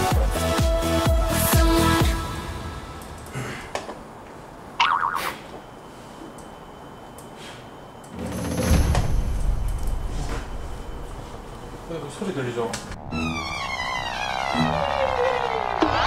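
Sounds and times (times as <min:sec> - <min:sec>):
low swell effect: 0:09.3 - 0:15.8.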